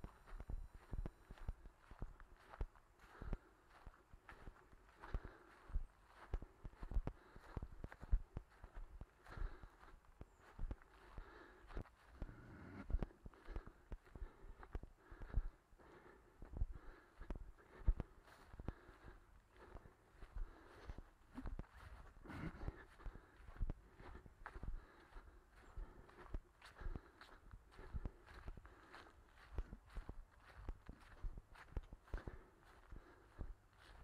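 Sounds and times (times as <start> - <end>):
footsteps on frosty grass: 0.0 - 34.0.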